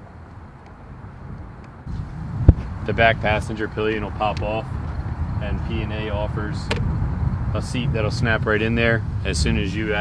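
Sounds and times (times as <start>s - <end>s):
wind rumble on microphone: 0.0s - 10.0s.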